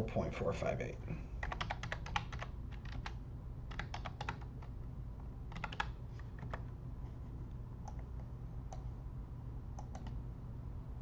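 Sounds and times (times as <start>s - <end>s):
keyboard typing: 1.4s - 4.7s, 5.5s - 6.7s, 9.8s - 10.2s.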